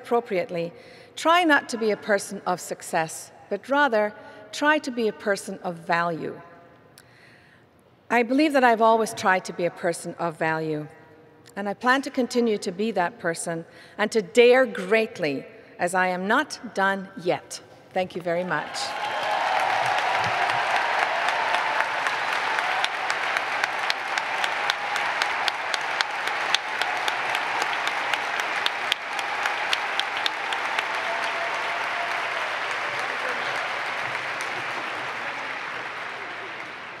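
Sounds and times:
audience applauding: 18.6s - 37.0s
crowd voices: 23.0s - 37.0s.

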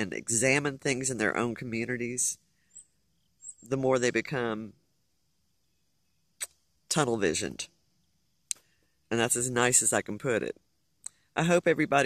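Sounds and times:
person speaking: 0.0s - 2.4s, 3.6s - 4.8s, 6.9s - 7.7s, 8.5s - 12.0s.

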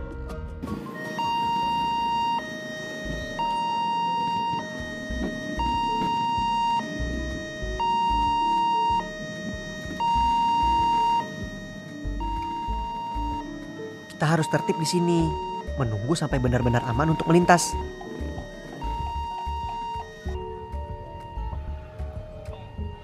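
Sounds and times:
level crossing two-tone alarm: 0.8s - 23.0s.

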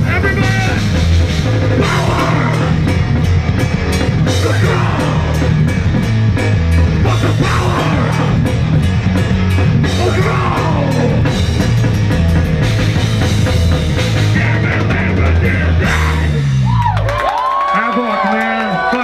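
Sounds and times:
distorted electric guitars: 0.0s - 17.0s
rapid drums: 0.0s - 19.0s.

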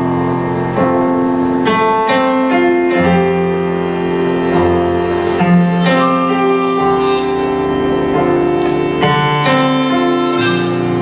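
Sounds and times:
keyboard chords: 0.0s - 11.0s
live band slow instrumental: 0.0s - 11.0s
reedy harmonica-like lead: 3.1s - 11.0s.

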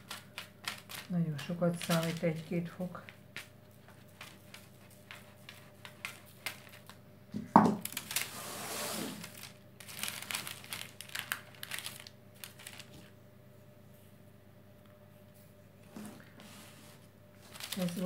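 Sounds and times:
baking paper crinkling: 0.0s - 7.0s, 7.7s - 13.1s, 16.2s - 18.0s.

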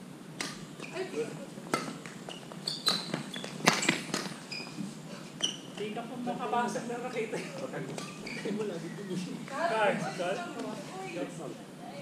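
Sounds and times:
rackets tapping shuttlecock: 0.4s - 1.0s, 1.6s - 4.4s
sneaker squeaks: 0.4s - 6.0s, 7.8s - 9.5s.

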